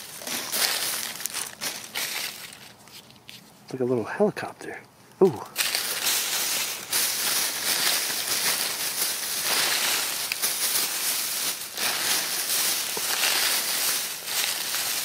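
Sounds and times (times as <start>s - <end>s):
plastic bag and packaging crinkling: 0.0s - 3.2s, 5.5s - 15.0s.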